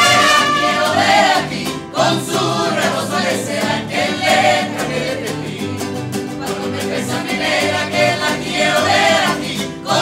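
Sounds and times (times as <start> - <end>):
mariachi chorus singing: 0.0 - 10.0
violins and guitars: 0.0 - 10.0.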